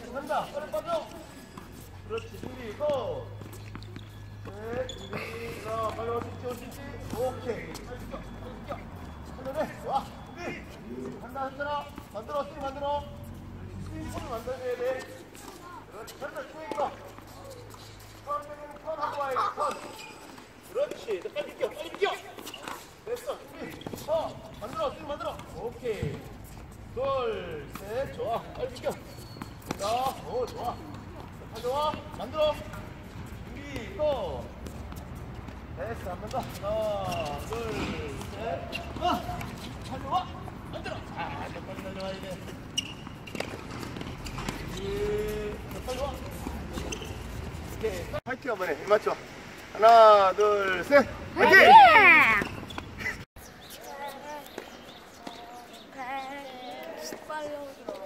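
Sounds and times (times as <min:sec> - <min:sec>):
balls bouncing on hard court: 0:13.8 - 0:26.7, 0:27.4 - 0:48.1
people shouting calls: 0:51.3 - 0:52.6.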